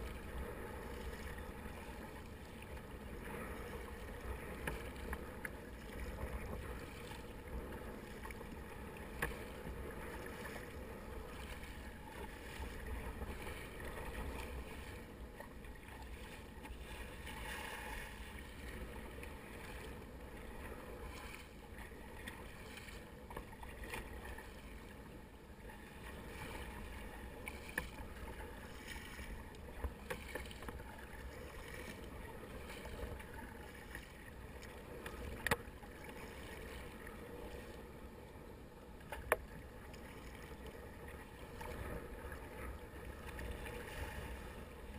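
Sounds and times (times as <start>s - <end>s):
sea wash: 0.0s - 44.9s
water splashing against kayak hull: 0.0s - 44.9s
wind: 0.0s - 44.9s.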